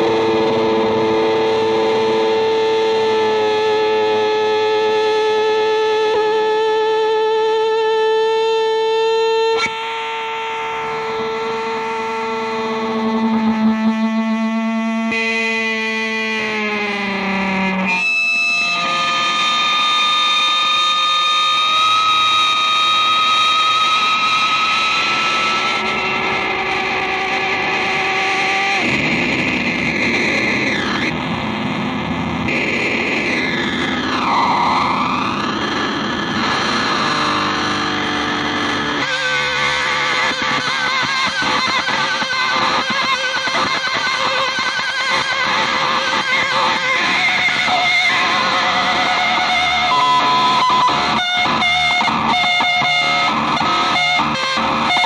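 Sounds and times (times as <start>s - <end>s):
distorted electric guitar: 0.0s - 55.0s.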